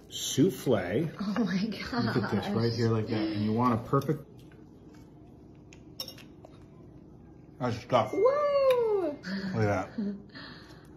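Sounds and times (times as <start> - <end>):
fork clinking: 5.7 - 6.6.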